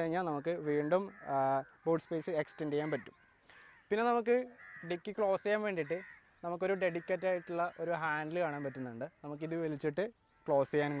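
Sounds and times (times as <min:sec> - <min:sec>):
man speaking: 0:00.0 - 0:03.1, 0:03.9 - 0:11.0.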